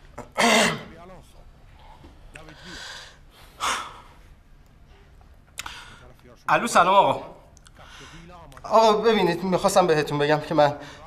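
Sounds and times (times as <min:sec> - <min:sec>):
man gasping and breathing: 0:01.8 - 0:04.2.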